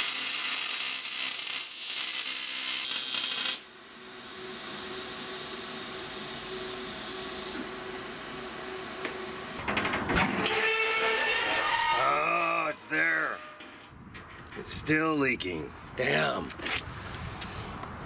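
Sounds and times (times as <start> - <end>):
welding arc hissing: 0.0 - 7.6.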